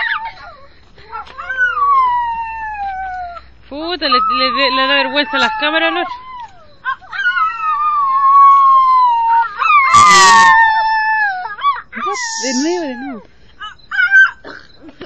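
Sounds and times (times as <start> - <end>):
dog howling: 0.0 - 14.4
people howling: 0.0 - 14.4.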